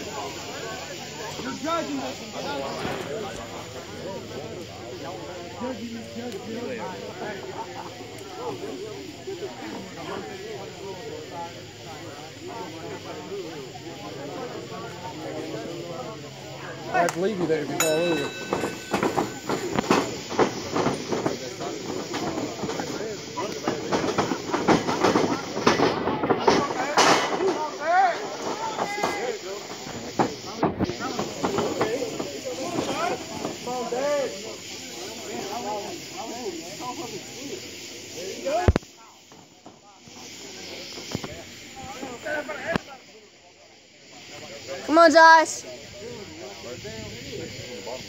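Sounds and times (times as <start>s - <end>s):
thumps: 17.8s - 22.3s
crowd shouting: 25.4s - 30.1s.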